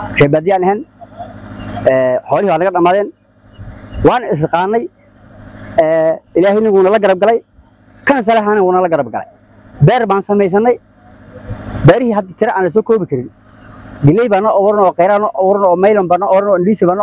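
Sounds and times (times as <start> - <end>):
man chanting a prayer: 5.7 - 7.4, 8.0 - 17.0.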